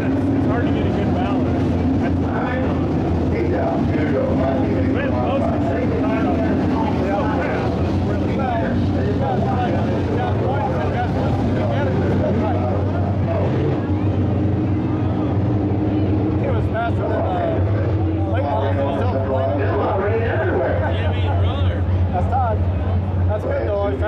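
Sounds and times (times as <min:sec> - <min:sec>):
people talking: 0:00.0 - 0:24.0
race car engines droning: 0:00.0 - 0:24.0.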